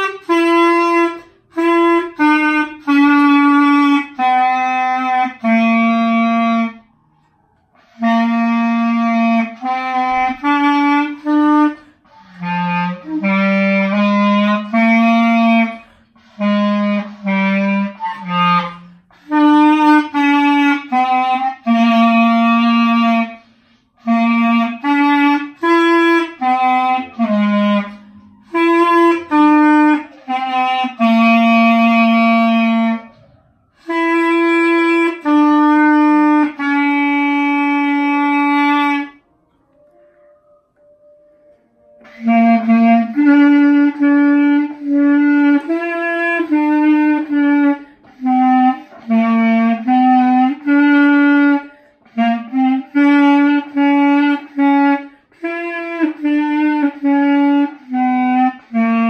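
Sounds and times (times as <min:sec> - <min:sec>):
solo clarinet playing: 0:00.0 - 0:59.0.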